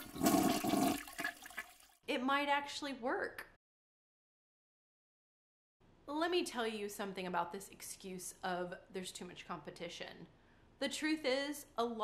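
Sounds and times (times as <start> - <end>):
toilet flushing: 0.0 - 2.0.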